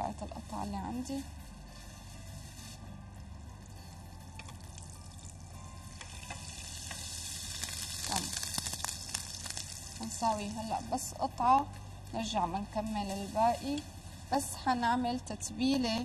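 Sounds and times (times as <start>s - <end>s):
patty sizzling in frying pan: 5.9s - 10.7s.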